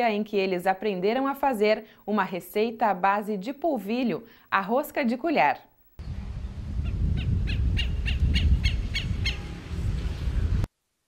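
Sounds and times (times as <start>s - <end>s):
steady low rumble: 6.0s - 10.7s
bird giving sharp repeated calls: 7.2s - 9.4s.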